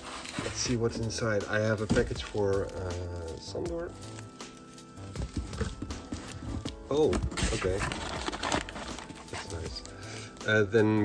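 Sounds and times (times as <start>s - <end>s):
packages knocking in cardboard box: 1.6s - 2.9s, 5.0s - 9.7s.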